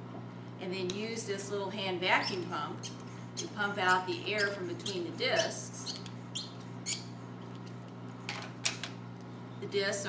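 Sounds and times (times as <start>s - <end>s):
hand pump squeaks: 2.2s - 7.1s.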